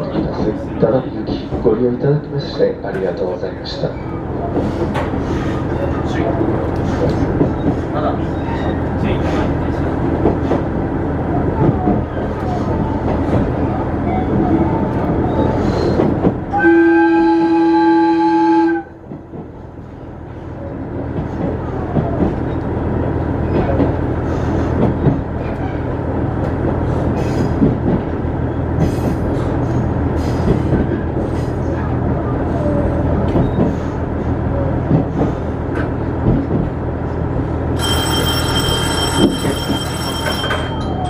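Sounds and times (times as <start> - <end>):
train running noise: 0.0 - 41.0
train horn: 16.5 - 19.0.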